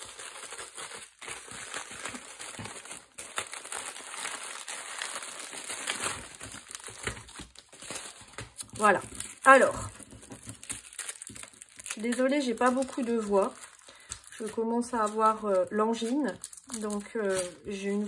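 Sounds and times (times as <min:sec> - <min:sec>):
plastic bubble mailer crinkling: 0:00.0 - 0:18.0
plastic packets rustling: 0:00.0 - 0:18.0.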